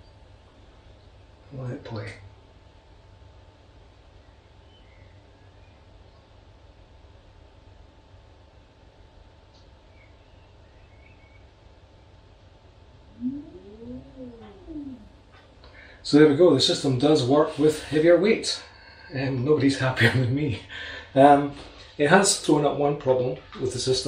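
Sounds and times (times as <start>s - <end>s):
faint low motor hum: 0.0s - 24.0s.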